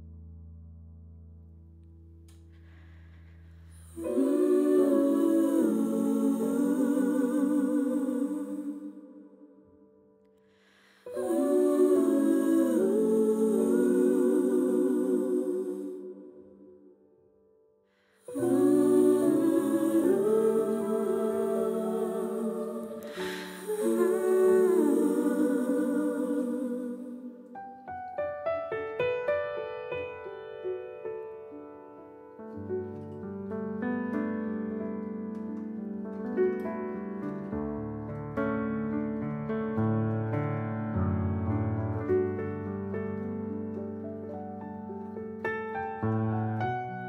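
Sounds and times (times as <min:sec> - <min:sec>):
digital piano chords: 0:03.8 - 0:08.8, 0:11.0 - 0:16.4, 0:18.3 - 0:47.0.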